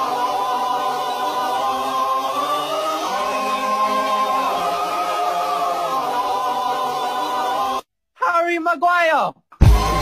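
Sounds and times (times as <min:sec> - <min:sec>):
choir singing held chords: 0:00.0 - 0:07.9.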